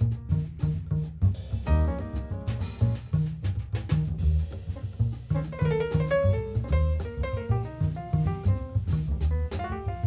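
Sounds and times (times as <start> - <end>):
drum kit with cymbals: 0.0 - 10.0
plucked double bass: 0.0 - 10.0
piano chords: 1.7 - 3.0.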